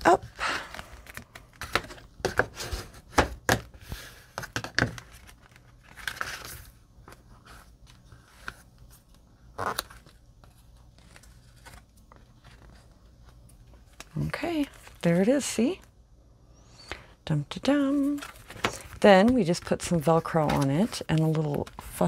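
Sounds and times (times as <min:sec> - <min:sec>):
paper crackle: 0:04.8 - 0:15.0, 0:17.8 - 0:22.0
paper rustling and tapping: 0:18.0 - 0:22.0.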